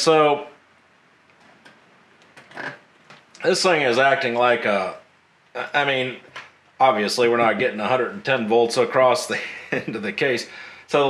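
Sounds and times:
cables clicking and rustling: 0:01.3 - 0:03.5
short breathy sound: 0:10.5 - 0:10.9.

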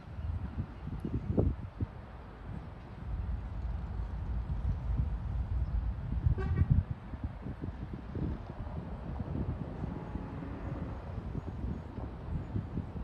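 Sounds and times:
wind rumbling on microphone: 0:00.0 - 0:13.0
distant locomotive horn toot: 0:06.4 - 0:06.8, 0:10.0 - 0:10.8.

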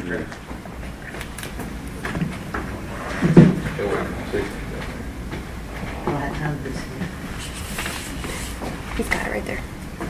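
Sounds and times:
low hum of hall: 0:00.0 - 0:10.0.

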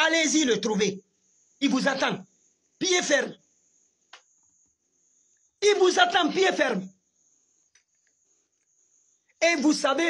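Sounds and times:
faint tick: 0:04.1 - 0:04.4.

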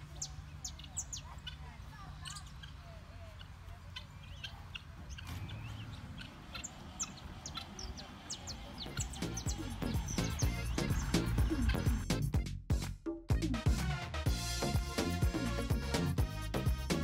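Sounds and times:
birds chirping: 0:00.0 - 0:12.4
music with a steady beat: 0:09.0 - 0:17.0.

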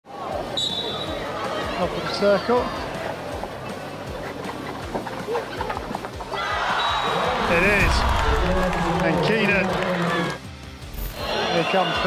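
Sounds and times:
crowd noise: 0:00.0 - 0:10.4
referee's whistle blast: 0:00.6 - 0:01.1
low thumps: 0:07.4 - 0:09.0.

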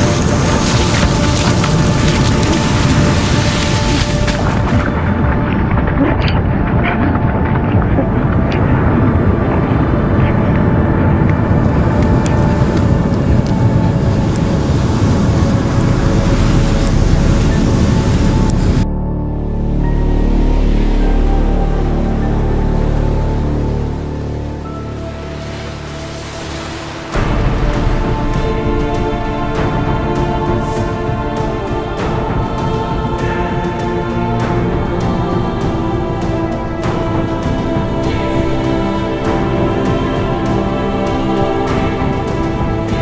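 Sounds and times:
surf breaking on beach: 0:00.0 - 0:18.8, 0:24.7 - 0:43.0
background music of low tones: 0:00.0 - 0:43.0
heavy rain: 0:00.0 - 0:43.0
wind noise on microphone: 0:00.0 - 0:43.0.

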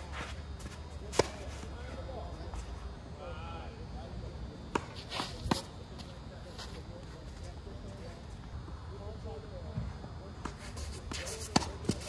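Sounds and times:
racket hitting tennis ball: 0:01.1 - 0:01.6, 0:10.4 - 0:12.0.

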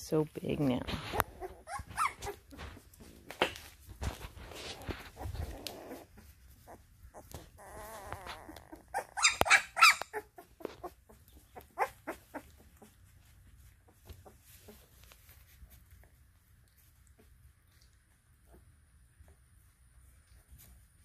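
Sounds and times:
puppies whimpering and squealing: 0:01.0 - 0:03.4, 0:04.2 - 0:15.5.

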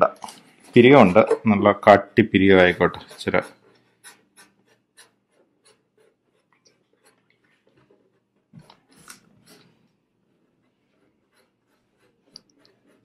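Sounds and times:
marker scratching on paper: 0:00.4 - 0:13.0.

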